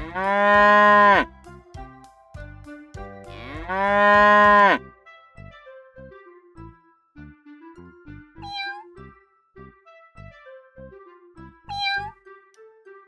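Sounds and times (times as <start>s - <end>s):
cow mooing: 0.0s - 1.3s, 3.3s - 4.8s
children's music: 0.0s - 13.0s.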